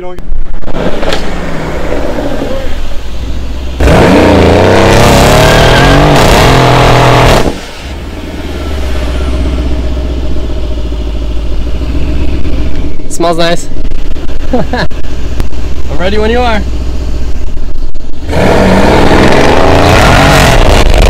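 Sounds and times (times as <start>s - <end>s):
car engine revving: 0.5s - 21.0s.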